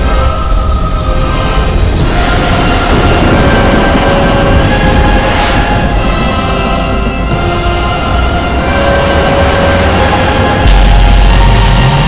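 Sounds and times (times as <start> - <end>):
film score: 0.0 - 12.0
rushing rumbling whoosh: 0.0 - 12.0.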